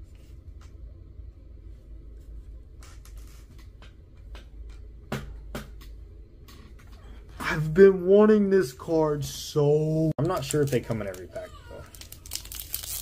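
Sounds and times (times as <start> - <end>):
low steady hum: 0.0 - 13.0
trading cards rustling: 10.2 - 13.0.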